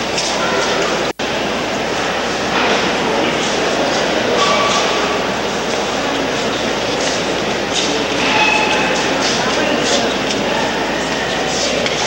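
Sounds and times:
many indistinct voices: 0.0s - 12.0s.

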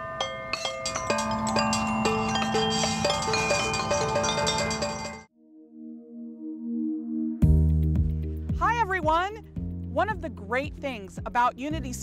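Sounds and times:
metal chimes struck with mallets: 0.0s - 5.3s
drum pads: 7.4s - 9.4s.

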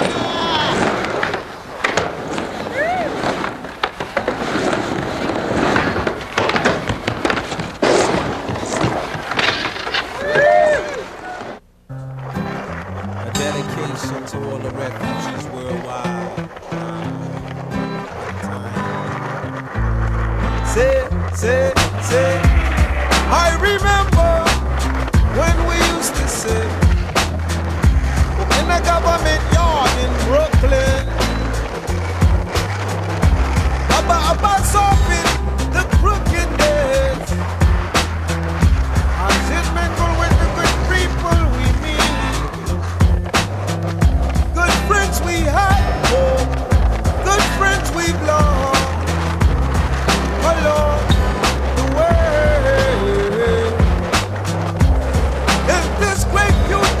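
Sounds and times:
skateboard clacks: 0.0s - 57.0s
skateboard wheels rolling on concrete: 0.0s - 57.0s
music with heavy bass beat: 20.5s - 57.0s.

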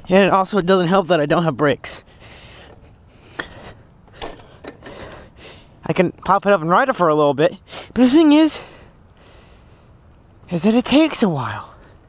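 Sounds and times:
bike rolling over concrete: 0.0s - 6.7s
bike clicks and knocks: 2.6s - 5.3s.

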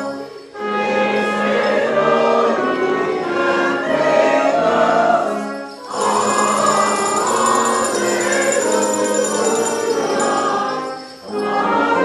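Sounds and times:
brass accompaniment: 0.0s - 12.0s
choir singing a hymn: 0.0s - 12.0s.

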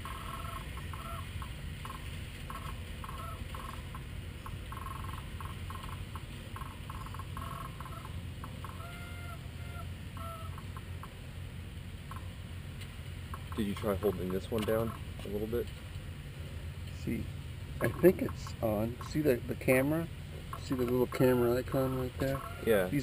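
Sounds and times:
birds calling: 0.0s - 23.0s
steady low rumble: 0.0s - 23.0s.

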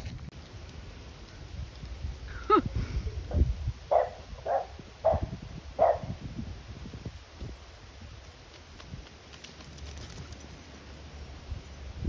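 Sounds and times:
dog barking: 3.9s - 6.1s.

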